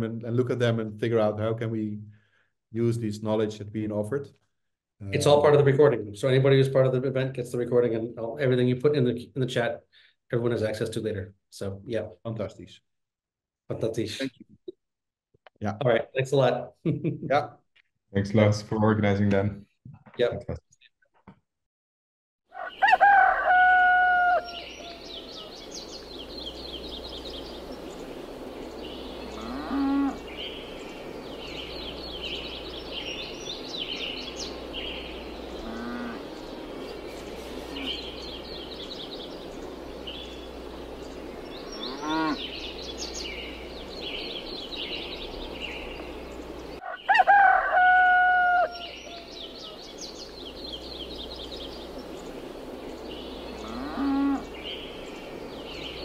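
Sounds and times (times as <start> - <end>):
rooster crowing: 22.5 - 25.6, 46.8 - 49.8
small birds chirping: 22.5 - 56.0
cattle lowing: 29.0 - 30.5, 35.1 - 38.2, 41.5 - 43.1, 53.4 - 54.6.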